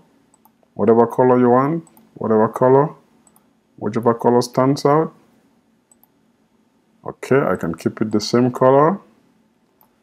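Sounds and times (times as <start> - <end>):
computer mouse click: 0.3 - 0.7, 1.8 - 2.1, 3.2 - 3.5, 5.9 - 6.2, 9.7 - 10.0
person speaking: 0.7 - 3.1, 3.8 - 5.3, 7.0 - 9.1.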